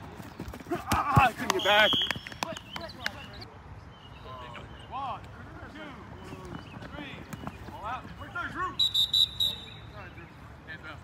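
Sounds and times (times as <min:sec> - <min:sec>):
whistle trill: 0:08.8 - 0:09.9.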